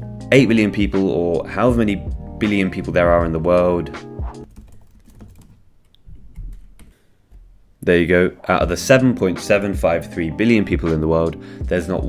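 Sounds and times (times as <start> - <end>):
computer keyboard typing: 4.5 - 7.0.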